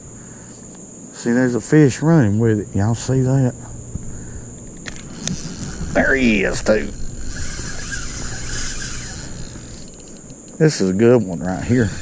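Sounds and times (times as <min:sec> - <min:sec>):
fishing reel whirring: 0:04.3 - 0:12.0.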